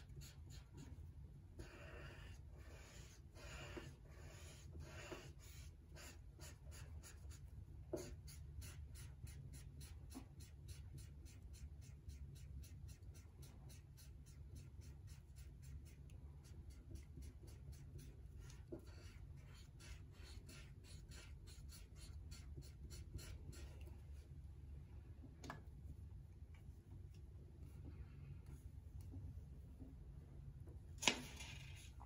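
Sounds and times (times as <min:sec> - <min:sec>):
marker pen scratching on paper: 0:00.0 - 0:24.3.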